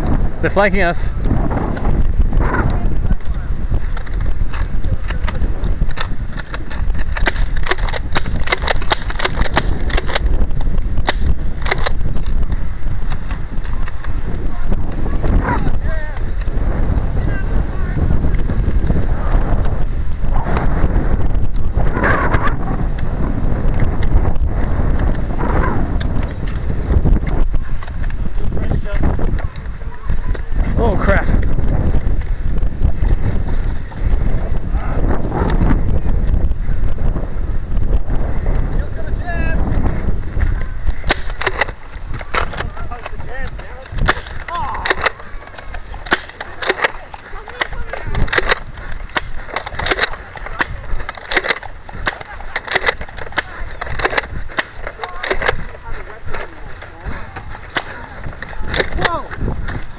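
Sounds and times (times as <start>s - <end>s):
wind rumble on microphone: 0.0s - 59.9s
sharp clicks: 1.7s - 17.0s, 22.9s - 25.3s, 25.9s - 32.3s, 39.6s - 59.9s.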